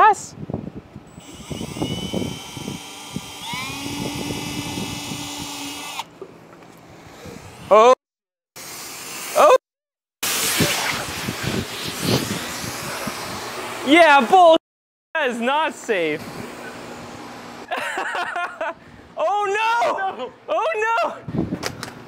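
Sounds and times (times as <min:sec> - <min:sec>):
cordless drill boring: 0:01.1 - 0:06.1
battery venting gas hiss: 0:10.2 - 0:13.9.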